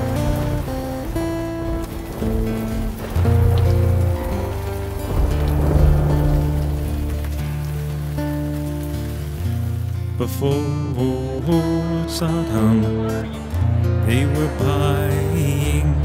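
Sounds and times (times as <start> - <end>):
heavy rain: 0.0 - 16.0.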